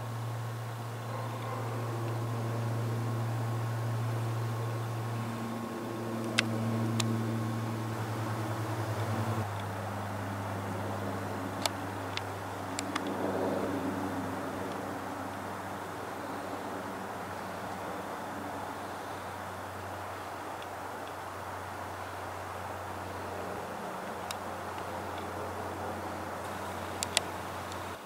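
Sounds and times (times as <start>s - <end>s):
turboprop engines droning overhead: 0.0s - 28.0s
sharp clicks: 6.1s - 8.0s, 11.5s - 13.2s, 26.4s - 28.0s.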